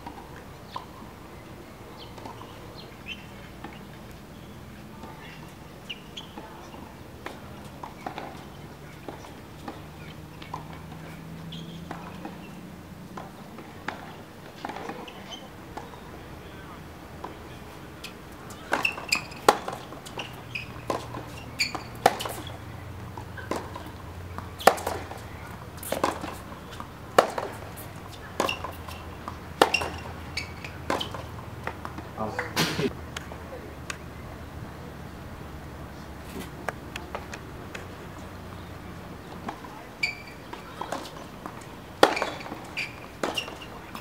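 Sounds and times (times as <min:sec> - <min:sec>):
racket striking ball: 0:05.0 - 0:16.6, 0:17.2 - 0:34.0, 0:39.3 - 0:44.0
ball bouncing: 0:18.5 - 0:32.0, 0:39.5 - 0:44.0.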